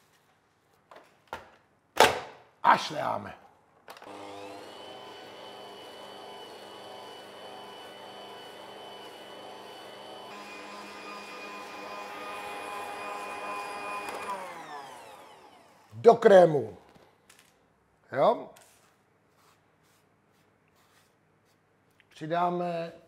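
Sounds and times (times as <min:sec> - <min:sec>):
electric stand mixer motor whining: 0:04.0 - 0:16.0.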